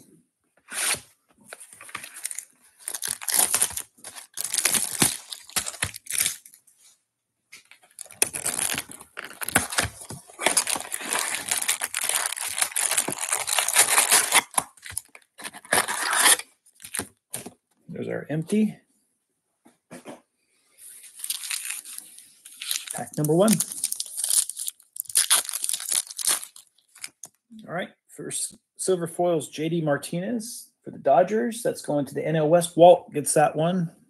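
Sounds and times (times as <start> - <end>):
shrink wrap tearing and crinkling: 0.7 - 6.6, 7.6 - 17.5, 21.0 - 27.4
foil packs rustling: 0.9 - 6.6, 7.8 - 17.6, 21.0 - 27.3.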